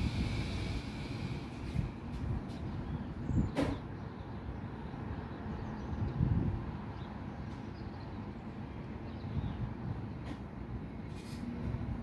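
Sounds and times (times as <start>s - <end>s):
low outdoor rumble: 0.0s - 3.5s.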